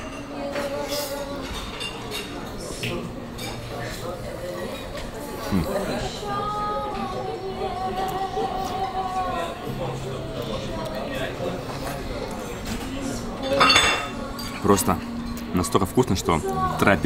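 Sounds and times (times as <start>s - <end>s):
dishes and cutlery clinking: 0.0s - 5.1s, 11.1s - 15.5s
background music: 0.0s - 17.0s.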